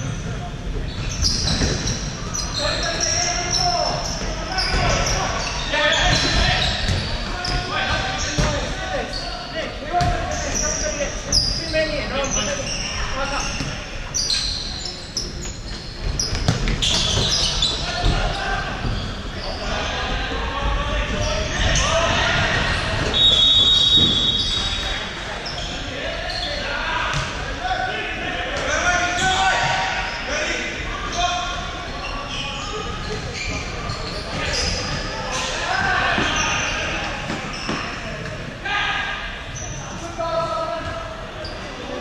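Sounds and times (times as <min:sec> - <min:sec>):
shoes squeaking: 0:00.8 - 0:20.0, 0:31.9 - 0:38.4
players calling out: 0:01.0 - 0:42.0.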